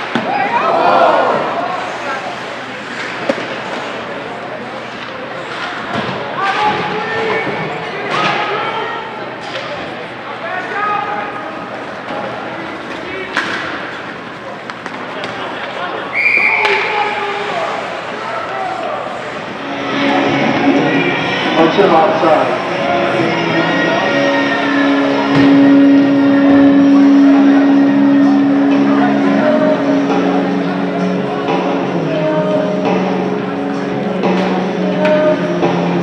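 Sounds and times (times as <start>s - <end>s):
spectators chatting: 0.0s - 36.0s
short high whistle: 16.1s - 16.8s.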